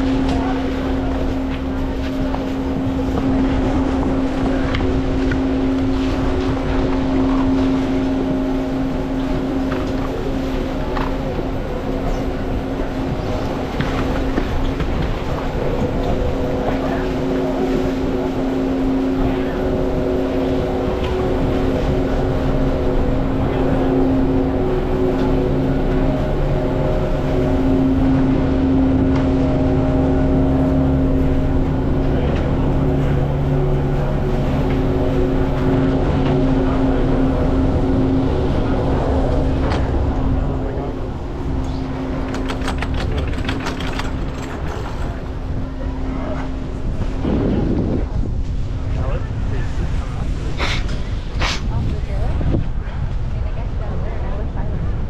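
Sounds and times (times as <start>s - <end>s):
machinery humming: 0.0s - 55.0s.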